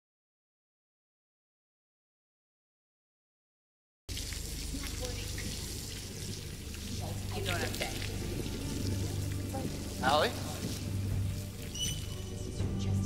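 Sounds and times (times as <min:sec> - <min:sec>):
garden hose spraying water: 0:04.1 - 0:12.4.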